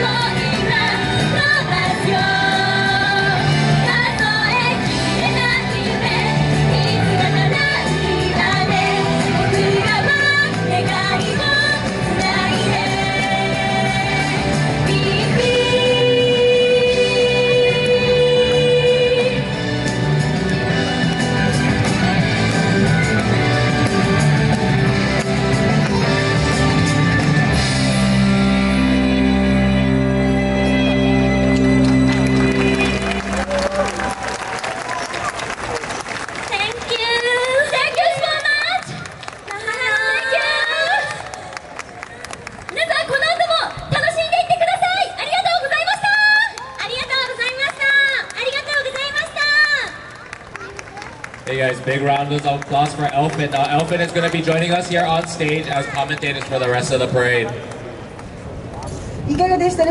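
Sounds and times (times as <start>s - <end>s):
pop song with female vocals: 0.0s - 19.7s.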